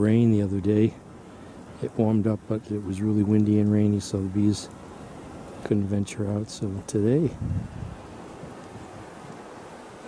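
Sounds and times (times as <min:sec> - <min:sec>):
wind: 0:00.0 - 0:10.0.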